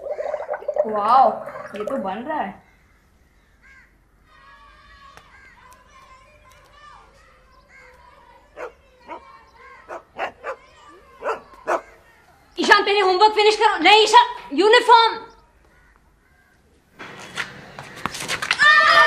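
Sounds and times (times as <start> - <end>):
dog barking: 8.6 - 9.3, 9.9 - 12.0.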